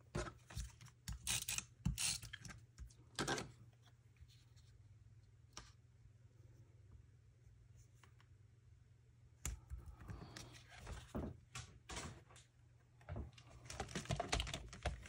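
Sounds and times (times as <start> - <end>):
faint low hum: 2.2 - 14.7.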